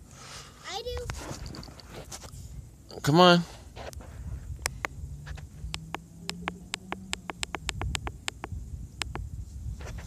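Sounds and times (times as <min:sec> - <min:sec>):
small sharp clicks: 0:05.7 - 0:09.3.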